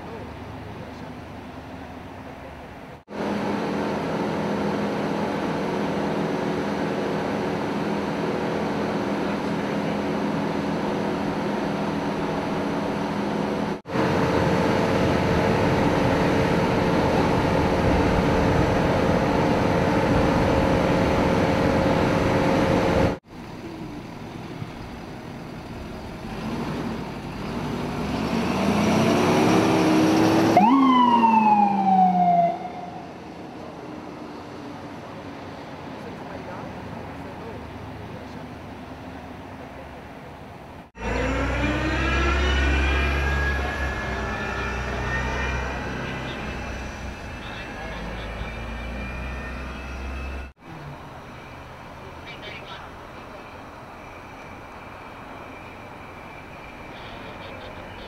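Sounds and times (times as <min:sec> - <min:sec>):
ambulance siren: 0:30.4 - 0:34.2, 0:41.0 - 0:58.0.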